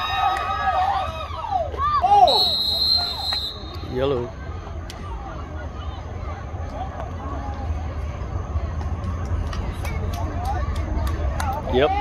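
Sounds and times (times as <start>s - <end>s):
spectators shouting: 0.0s - 4.4s
referee's whistle blast: 2.2s - 4.0s.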